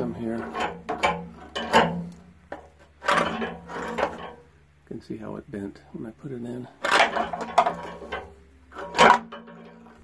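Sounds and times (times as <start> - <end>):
metal rod scraping tank opening: 0.0 - 4.5, 6.8 - 10.0.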